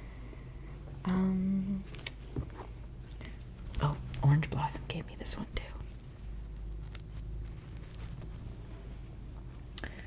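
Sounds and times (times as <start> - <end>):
steady low hum: 0.0 - 10.0
shirt fabric rustling: 6.0 - 9.7.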